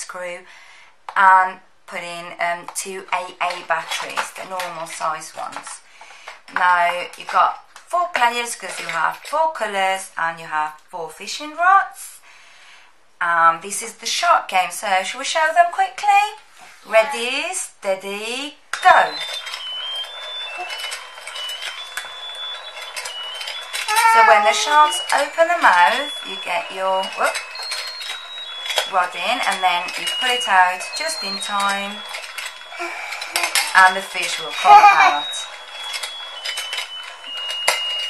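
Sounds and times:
electronic beeping tune: 0:18.8 - 0:38.0.

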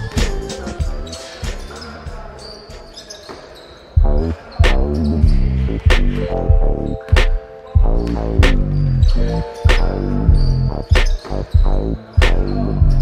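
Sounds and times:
backing music: 0:00.0 - 0:02.4, 0:04.0 - 0:13.0
basketball bouncing on wooden floor: 0:04.0 - 0:13.0
loud bass-heavy music: 0:04.0 - 0:13.0.

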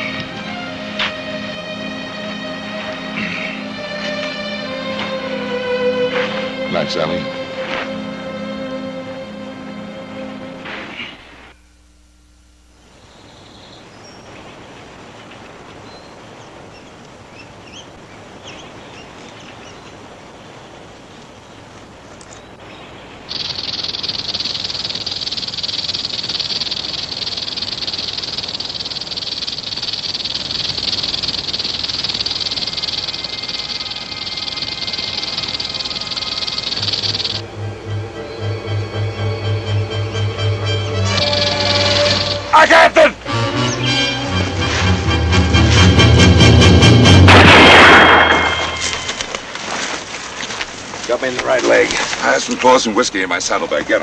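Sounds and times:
tense music with pulsing beat: 0:00.0 - 0:10.6, 0:23.3 - 0:42.6, 0:43.2 - 0:47.4
rattlesnake rattle buzzing: 0:23.3 - 0:37.4, 0:41.0 - 0:42.5.

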